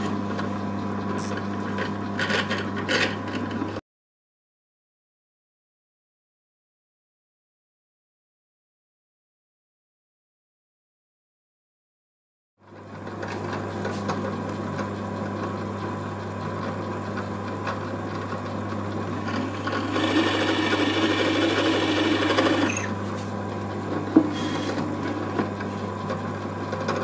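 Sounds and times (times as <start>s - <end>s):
drill press motor humming: 12.9s - 27.0s
drill bit boring into wood: 19.5s - 23.0s.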